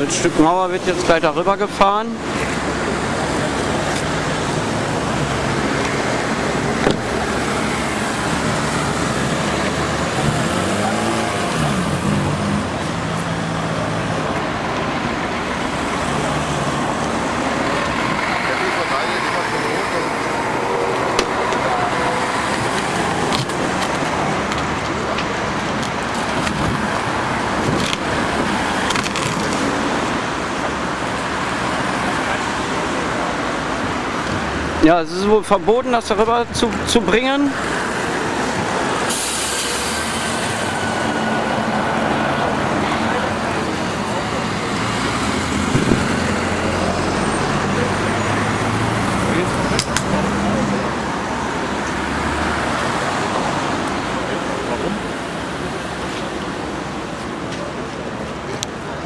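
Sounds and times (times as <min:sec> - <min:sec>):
murmur of crowd voices: 0:00.0 - 0:59.0
road traffic noise: 0:00.0 - 0:59.0
sharp knocks: 0:06.8 - 0:07.2.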